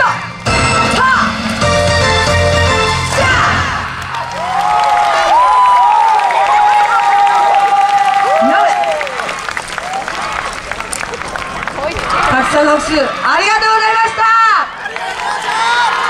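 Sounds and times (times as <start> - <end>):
dance music: 0.0 - 4.3
cheering: 3.1 - 16.0
clapping: 4.0 - 12.3.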